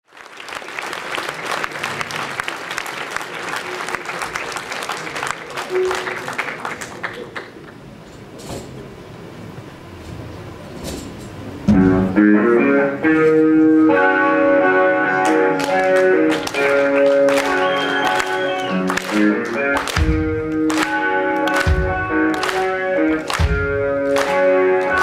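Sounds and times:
audience applauding: 0.1s - 7.9s, 15.2s - 25.0s
loud guitars playing: 11.6s - 25.0s.

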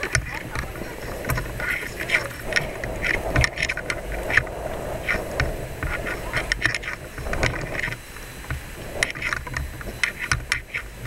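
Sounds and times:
murmur of passers-by: 0.0s - 10.0s
footsteps: 0.0s - 11.0s
microphone handling noise: 0.0s - 11.0s.

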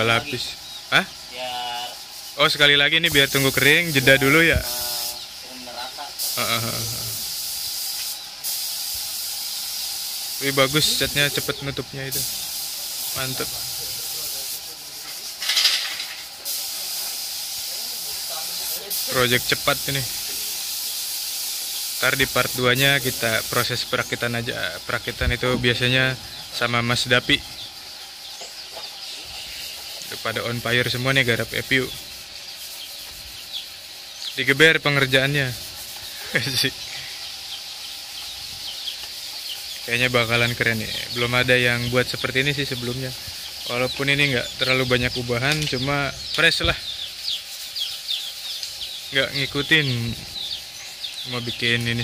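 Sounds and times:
paint spray gun hissing: 0.0s - 52.0s
small birds chirping: 0.0s - 52.0s.

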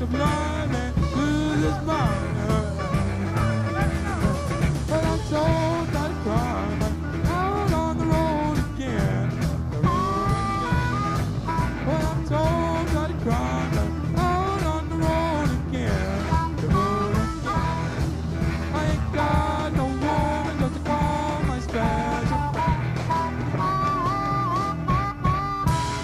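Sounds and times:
bass: 0.0s - 26.0s
electric guitar lead: 0.0s - 26.0s
steady drums: 0.0s - 26.0s.

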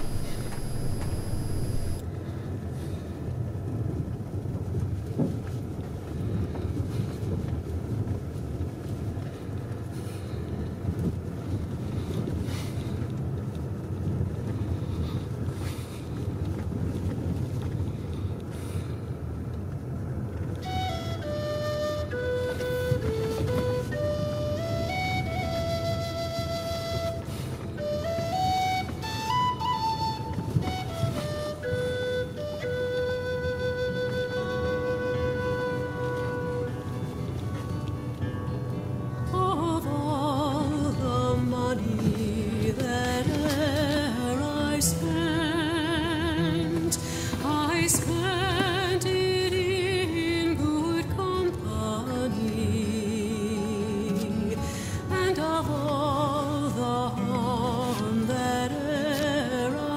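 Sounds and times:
car engine and tyres rumbling: 0.0s - 33.1s, 35.2s - 59.9s
flute melody: 20.4s - 38.1s.

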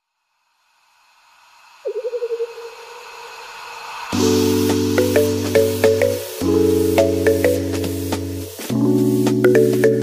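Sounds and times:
transition hiss: 0.0s - 9.4s.

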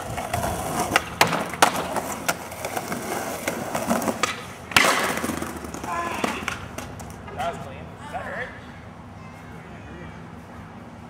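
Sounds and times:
skateboard clacking on ground: 0.0s - 7.6s
skateboard wheels rolling on concrete: 0.0s - 9.2s.

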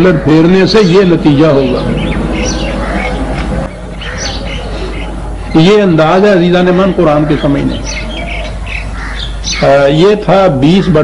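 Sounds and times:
man speaking: 0.0s - 2.0s, 5.5s - 7.9s, 9.6s - 11.0s
steady low hum: 0.0s - 9.6s
high bird chirps: 1.3s - 6.3s, 7.4s - 9.8s.

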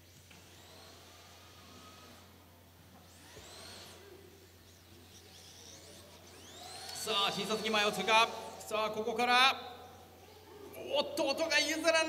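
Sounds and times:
electric toy car motors whining: 0.0s - 10.5s.

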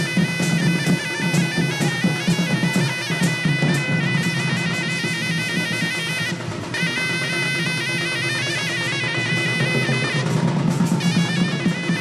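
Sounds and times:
barrel drums beating: 0.0s - 12.0s
double-reed pipe melody: 0.0s - 12.0s.

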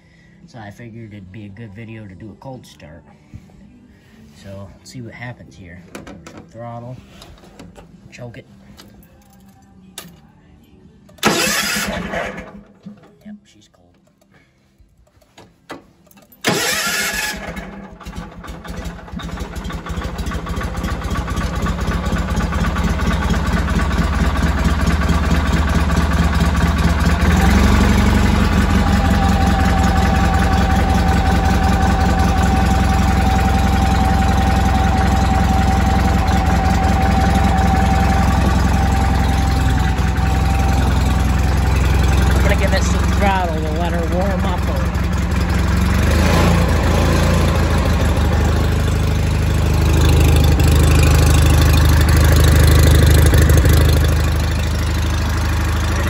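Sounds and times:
tractor engine starting and running: 0.0s - 56.0s.

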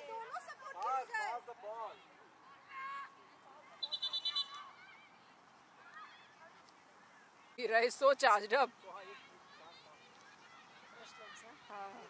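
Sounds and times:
referee's pea whistle: 3.8s - 4.8s.

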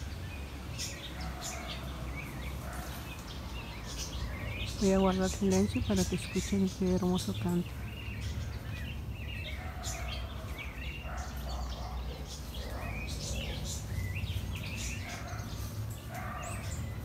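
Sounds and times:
birds chirping and whistling: 0.0s - 17.0s.

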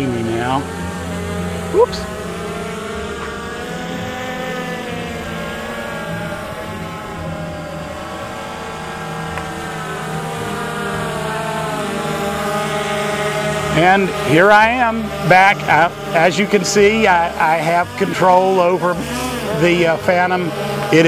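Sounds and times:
drone propellers whining: 0.0s - 21.0s.

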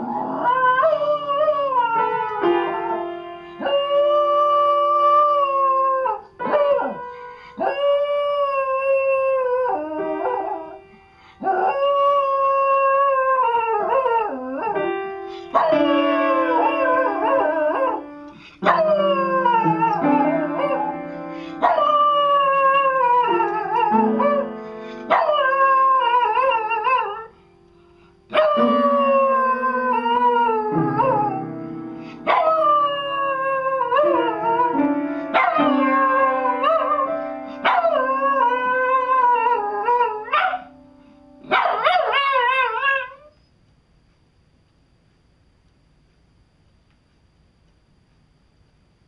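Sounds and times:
steady held musical note: 14.8s - 41.5s
dog howling: 18.6s - 21.0s, 28.3s - 31.4s, 32.3s - 40.7s.

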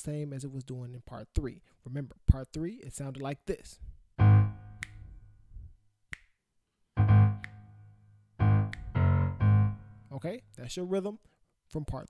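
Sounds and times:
low piano bass chords: 4.2s - 5.4s, 7.0s - 10.2s.

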